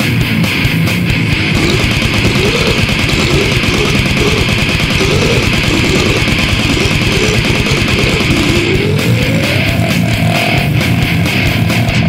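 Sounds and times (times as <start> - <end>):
distorted electric guitar riffing: 0.0 - 12.0
rapid drumming: 1.3 - 12.0.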